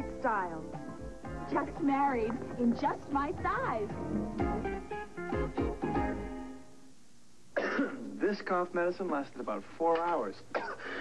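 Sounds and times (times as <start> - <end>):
person coughing: 7.6 - 8.1, 10.5 - 11.0.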